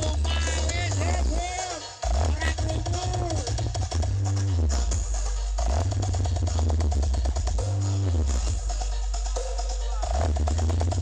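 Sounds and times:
loud electronic dance music: 0:00.0 - 0:11.0.

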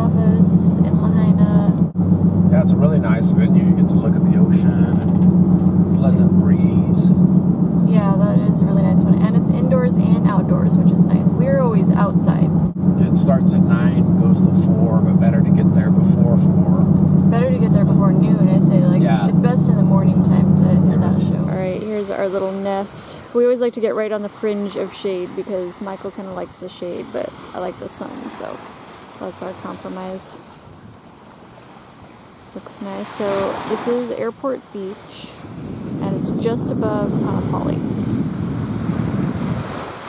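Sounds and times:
car cabin engine and road drone: 0:00.0 - 0:40.0
person speaking: 0:05.9 - 0:28.6.

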